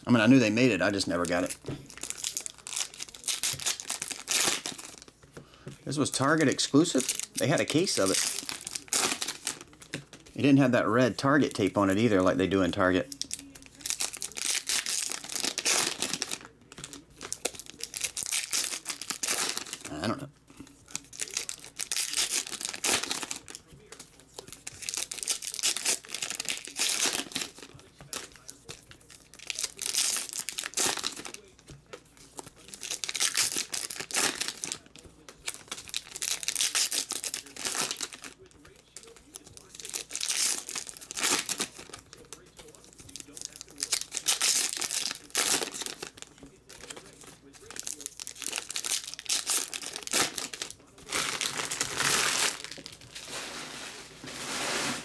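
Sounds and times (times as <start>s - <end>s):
foil wrapper crinkling and tearing: 0.2s - 5.2s, 5.8s - 20.2s, 20.9s - 55.0s.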